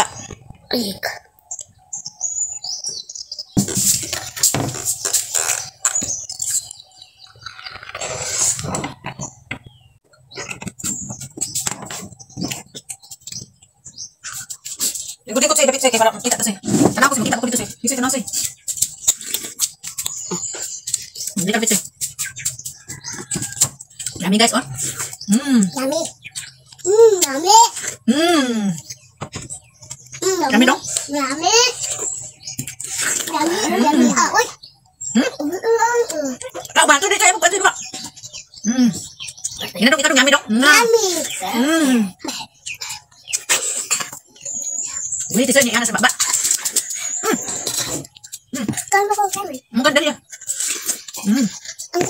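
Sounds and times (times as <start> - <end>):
people chewing and slurping: 3.5 - 37.1, 40.8 - 52.0.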